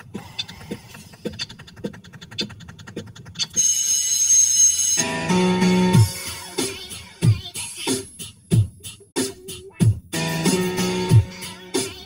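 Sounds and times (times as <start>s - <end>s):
rhythmic ticking: 0.0s - 12.0s
high-pitched electronic tone: 3.5s - 6.1s.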